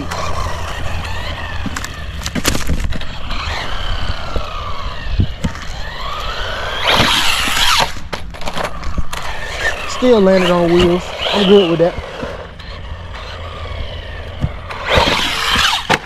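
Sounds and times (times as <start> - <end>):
rc car motor whine: 0.0 - 16.0
tyre noise on asphalt: 0.0 - 16.0
rc car landing knocks: 6.7 - 9.3.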